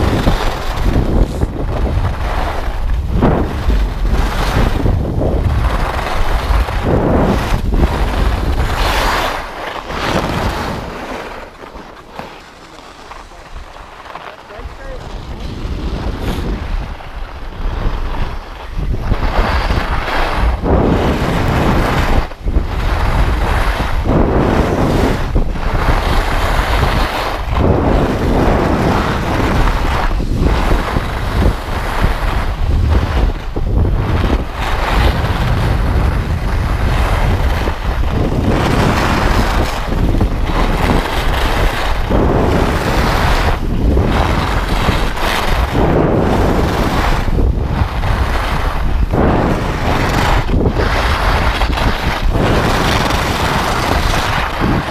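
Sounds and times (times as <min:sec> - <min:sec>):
skis running over snow: 0:00.0 - 0:54.9
wind rushing over microphone: 0:00.0 - 0:54.9.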